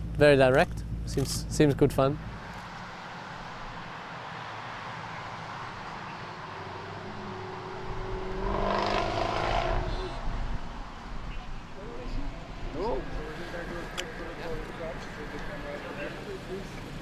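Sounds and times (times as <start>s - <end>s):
cars driving past: 2.0s - 17.0s.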